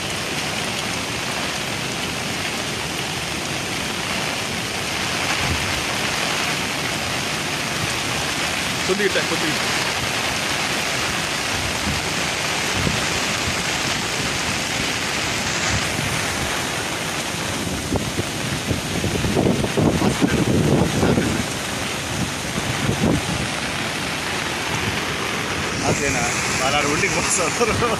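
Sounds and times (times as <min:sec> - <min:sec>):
floodwater churning: 0:00.0 - 0:27.9
heavy rain: 0:00.0 - 0:27.9
wind buffeting microphone: 0:04.4 - 0:08.8, 0:09.6 - 0:27.9.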